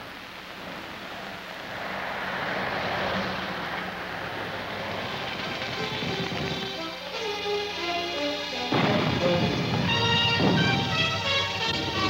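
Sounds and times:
aircraft passing overhead: 0:00.6 - 0:12.0.

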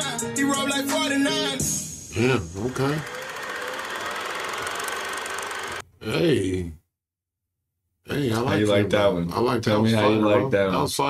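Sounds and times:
fast mechanical rattle: 0:03.0 - 0:05.8.

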